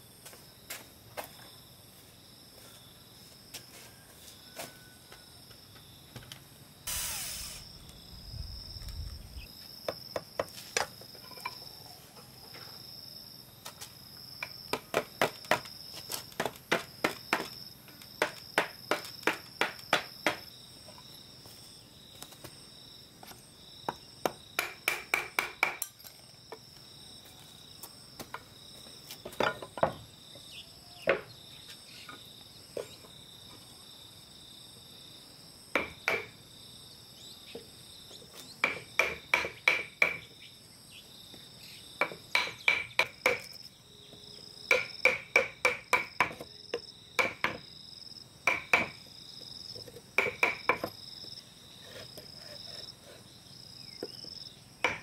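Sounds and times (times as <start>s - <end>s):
insects droning: 0.0s - 55.0s
hammer striking wood: 18.2s - 20.4s, 24.2s - 25.9s, 35.7s - 36.3s, 38.6s - 40.2s, 42.0s - 43.5s, 44.7s - 46.4s, 47.2s - 47.6s, 48.4s - 49.0s, 50.2s - 50.9s.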